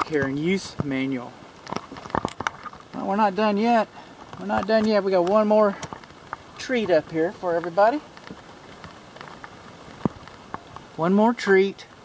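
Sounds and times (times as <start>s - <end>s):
handling ticks and crackles: 0.0s - 12.0s.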